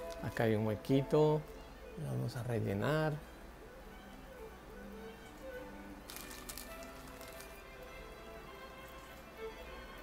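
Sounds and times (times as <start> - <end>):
soft background music: 0.0 - 10.0
handling noises: 6.1 - 7.6.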